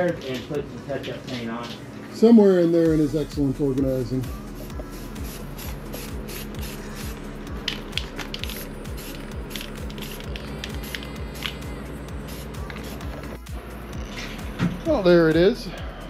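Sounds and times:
background music with steady beat: 0.0 - 16.0
spray-paint can hissing: 4.5 - 13.4.

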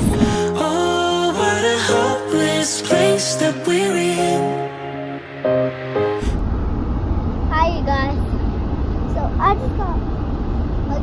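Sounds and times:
car interior rumble: 0.0 - 0.4, 6.3 - 11.0.

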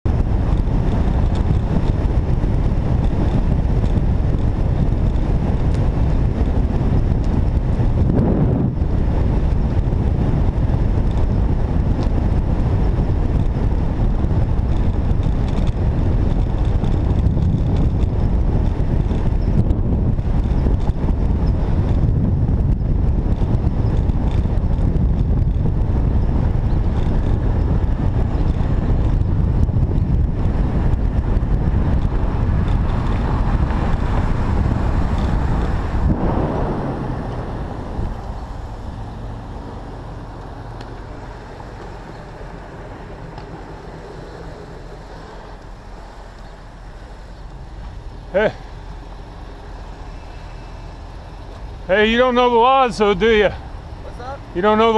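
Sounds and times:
road noise: 0.0 - 54.9
wind rushing over microphone: 0.0 - 54.9.

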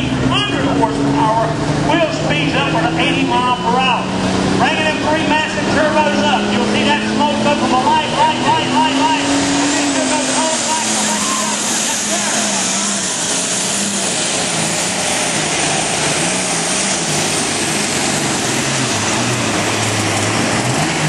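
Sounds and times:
tractor engine roaring with whine: 0.0 - 21.0.

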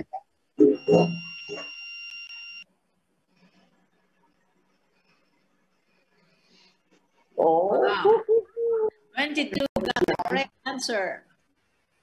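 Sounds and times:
steady high electronic tone: 0.6 - 2.6
person speaking: 7.3 - 10.6.

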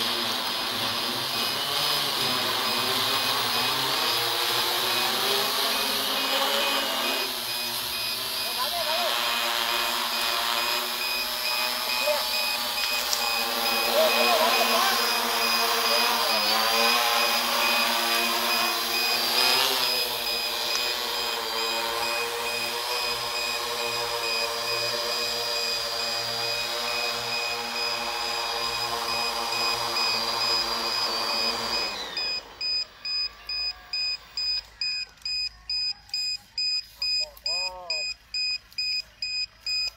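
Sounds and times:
drone rotors humming: 0.0 - 35.2
electronic beeping: 1.2 - 39.9.

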